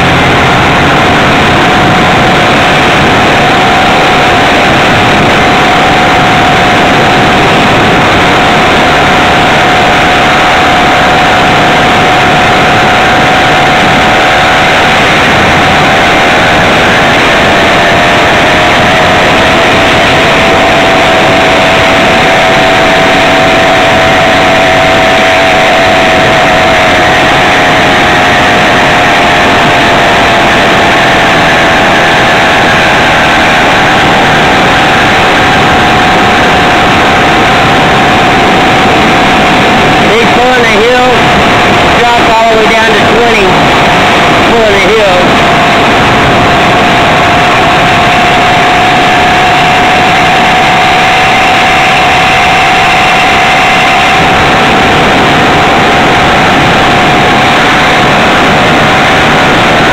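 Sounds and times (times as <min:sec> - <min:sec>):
loud rushing noise: 0:00.0 - 0:59.9
small two-stroke engine running: 0:00.0 - 0:59.9.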